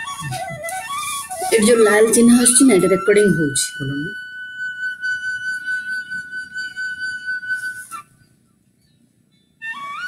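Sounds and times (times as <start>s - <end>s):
flute-like high note: 0.0s - 8.0s.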